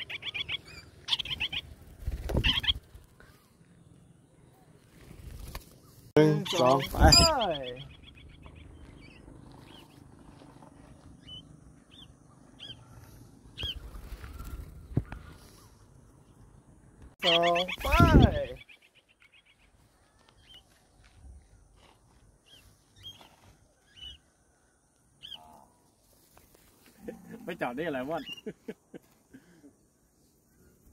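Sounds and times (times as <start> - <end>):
cockatiels chirping: 0.0 - 1.6, 6.5 - 9.1.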